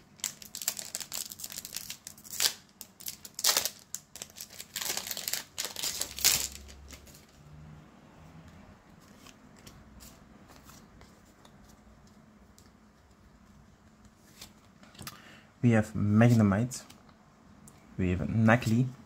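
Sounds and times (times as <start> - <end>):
foil wrapper crinkling: 0.2 - 6.9.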